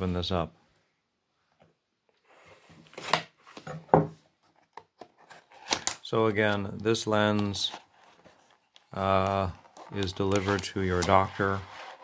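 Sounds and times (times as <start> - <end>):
cardboard scraping and rustling: 9.6 - 12.0.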